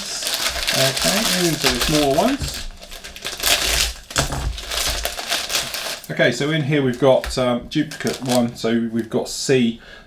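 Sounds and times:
plastic bag crinkling: 0.0 - 6.2, 6.8 - 8.6.

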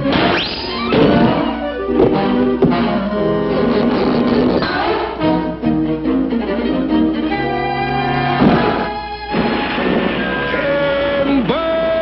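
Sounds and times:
orchestral cartoon music: 0.0 - 11.6.

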